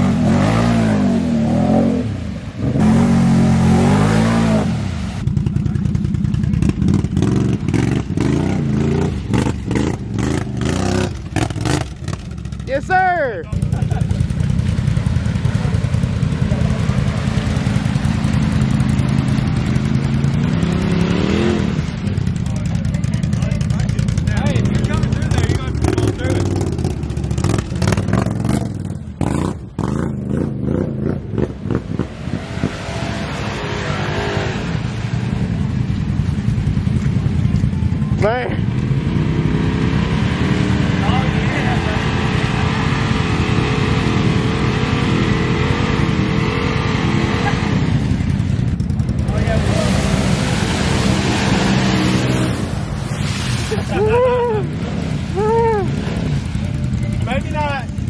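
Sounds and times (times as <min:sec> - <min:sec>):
off-road engines revving in mud: 0:00.0 - 0:58.0
tires spinning in mud: 0:00.0 - 0:58.0.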